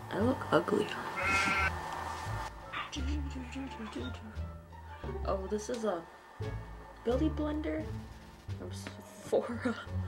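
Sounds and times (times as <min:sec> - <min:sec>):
soft background music: 0:00.0 - 0:10.0
short bleat: 0:01.2 - 0:01.7.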